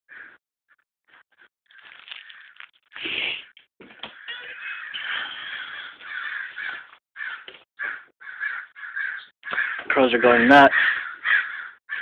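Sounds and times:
crows cawing: 0.1 - 0.4, 1.7 - 2.7, 4.1 - 12.0.

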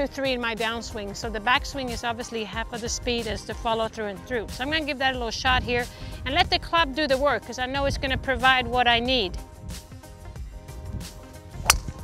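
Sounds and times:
background music: 0.0 - 12.0
golf club striking ball: 11.6 - 12.0.

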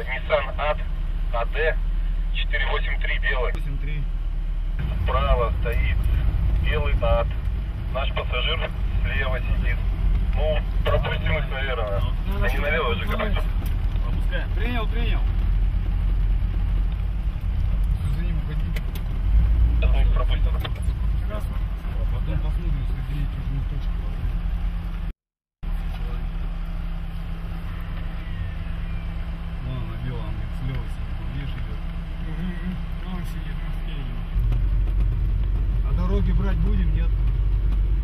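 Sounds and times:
vehicle engine and road rumble: 0.0 - 38.0.

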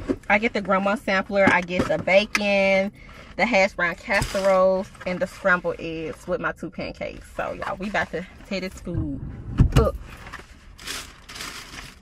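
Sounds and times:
food bag rustling: 10.3 - 12.0.

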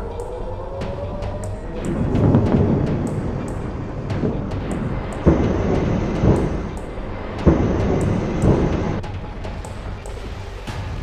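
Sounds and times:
deep rumble: 0.0 - 11.0
faint ticking beat: 0.0 - 11.0
heavy booms: 0.8 - 9.1.

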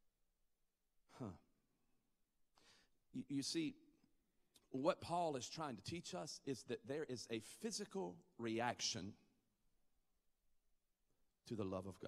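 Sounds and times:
intake of breath: 2.6 - 3.0.

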